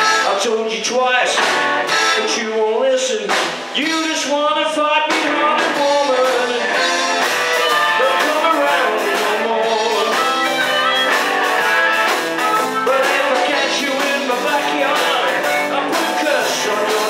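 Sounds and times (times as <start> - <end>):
amplified harmonica: 0.0 - 0.6, 1.6 - 2.5, 6.1 - 13.9
blues-rock band playing: 0.0 - 17.0.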